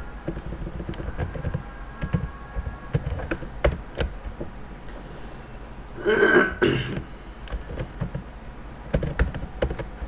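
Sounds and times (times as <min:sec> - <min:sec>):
computer keyboard keystrokes: 0:00.2 - 0:04.2, 0:07.4 - 0:08.3, 0:08.9 - 0:10.0
person clearing throat: 0:06.0 - 0:07.0.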